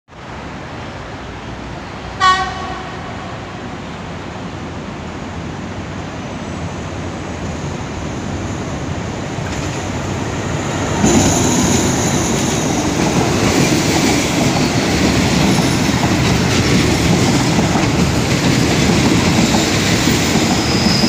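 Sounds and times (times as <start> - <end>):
train rumble: 0.4 - 21.0
locomotive horn blast: 2.2 - 3.8.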